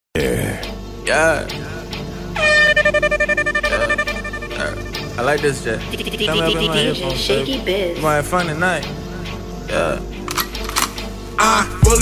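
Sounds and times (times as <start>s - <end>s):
air horn blast: 2.4s - 5.2s
hip-hop beat: 2.4s - 8.0s, 11.4s - 12.0s.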